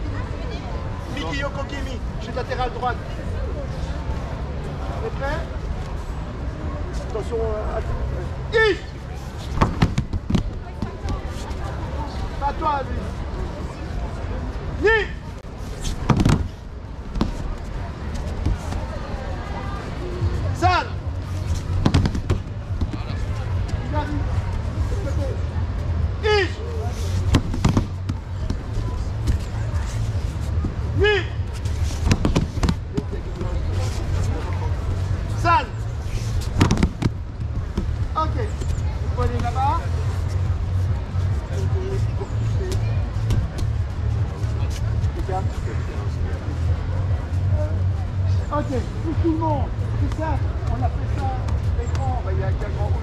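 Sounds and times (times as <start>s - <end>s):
voices calling out: 7.8s - 46.3s
steady low rumble: 13.0s - 53.0s
bodies slapping onto mats: 15.9s - 16.5s, 21.7s - 23.0s, 27.2s - 28.6s, 32.0s - 33.1s, 36.5s - 37.2s
person shouting: 31.0s - 31.4s.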